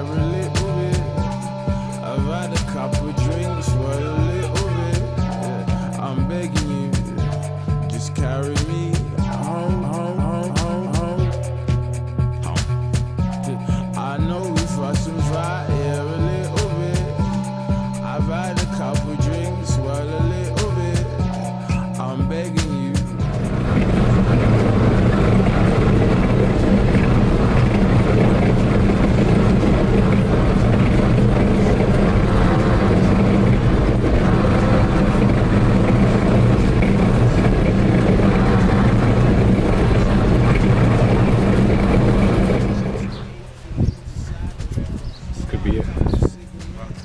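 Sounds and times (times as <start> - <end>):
armoured vehicle engine droning: 0.0 - 6.5, 23.1 - 43.9
background music: 0.0 - 44.8.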